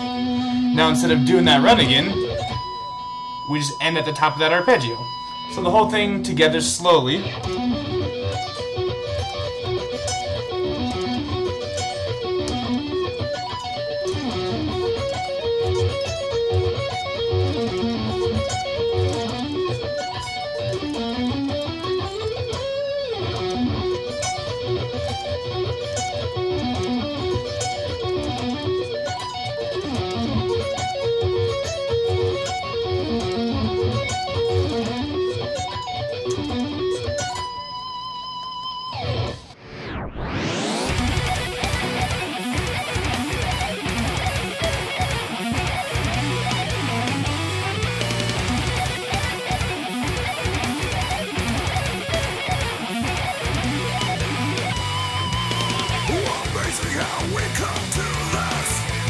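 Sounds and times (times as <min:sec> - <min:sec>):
electric guitar arpeggios: 0:00.0 - 0:59.0.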